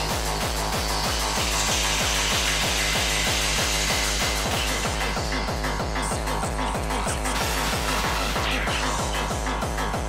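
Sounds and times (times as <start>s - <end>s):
distorted kick drum: 0.0s - 10.0s.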